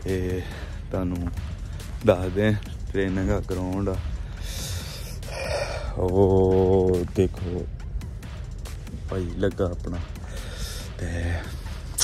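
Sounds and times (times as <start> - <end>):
man breathing in and out: 0.4 - 0.9, 4.0 - 6.0, 10.2 - 12.0.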